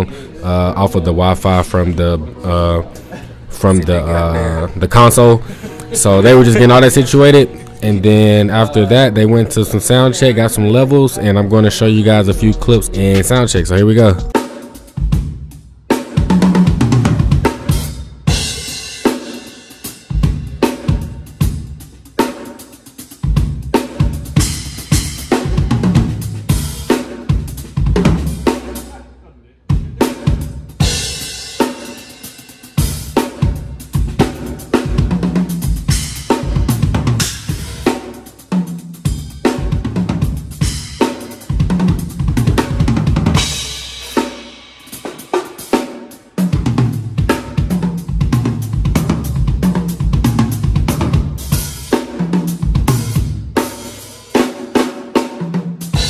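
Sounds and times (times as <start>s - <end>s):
acoustic drum kit: 12.1s - 56.0s.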